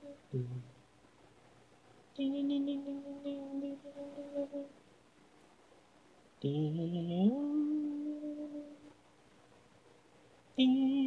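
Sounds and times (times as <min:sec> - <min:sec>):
voice holding a steady note: 0:00.0 - 0:00.7, 0:02.2 - 0:04.8, 0:06.4 - 0:08.9.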